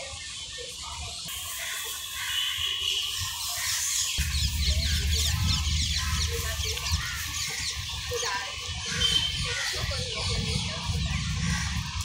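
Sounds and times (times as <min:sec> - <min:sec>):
birds chirping: 0:00.0 - 0:12.0
low rumble: 0:04.2 - 0:07.9, 0:10.3 - 0:12.0.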